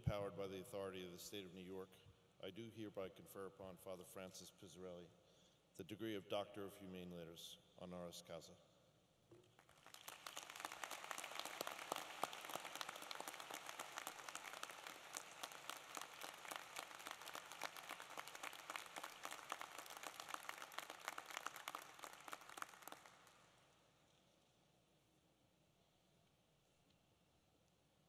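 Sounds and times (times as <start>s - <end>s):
audience applauding: 9.6s - 23.6s.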